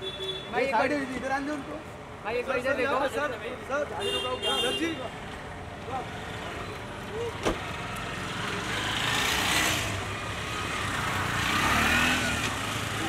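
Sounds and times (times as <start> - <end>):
cars passing: 0.6 - 13.0.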